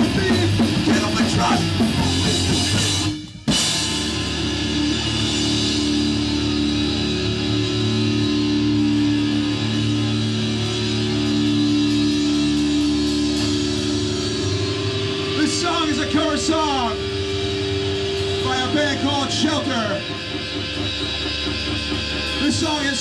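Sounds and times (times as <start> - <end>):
droning guitar chord: 3.5 - 23.0.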